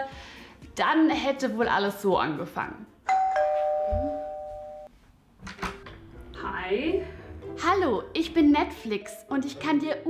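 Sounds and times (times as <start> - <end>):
two-tone doorbell chime: 3.1 - 4.9.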